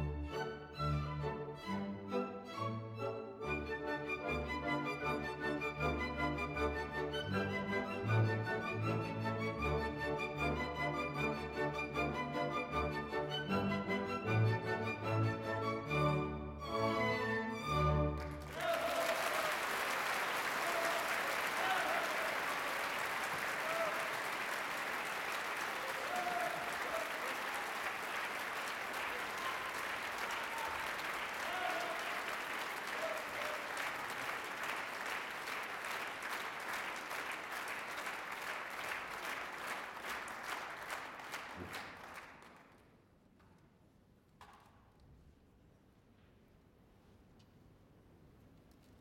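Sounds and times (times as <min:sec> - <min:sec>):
audience applauding: 0:18.1 - 0:42.8.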